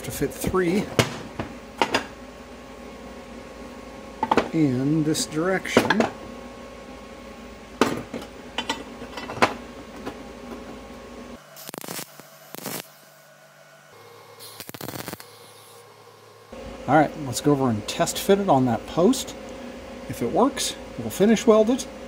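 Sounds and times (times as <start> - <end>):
arc welding bursts: 11.5 - 13.2, 14.4 - 15.8.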